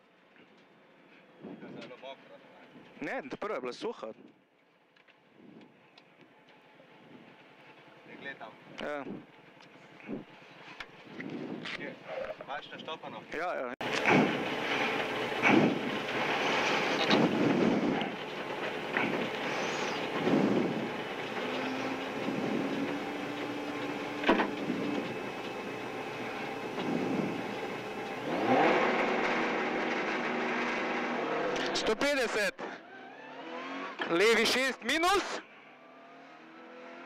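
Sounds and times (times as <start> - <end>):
car engine revving: 13.8 - 34.5, 35.6 - 37.0.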